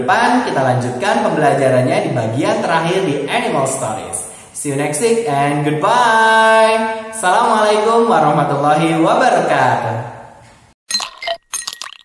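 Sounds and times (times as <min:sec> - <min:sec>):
glassy clinking sound effect: 0:10.9 - 0:12.0.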